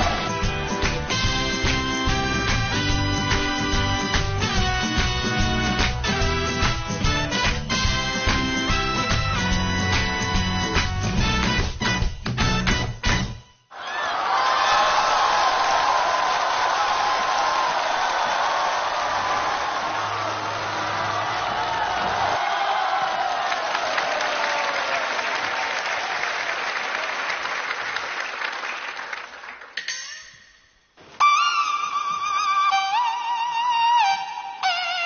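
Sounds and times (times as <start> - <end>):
audience applauding and cheering: 0.0 - 12.8, 13.7 - 29.8
band playing: 0.0 - 13.5.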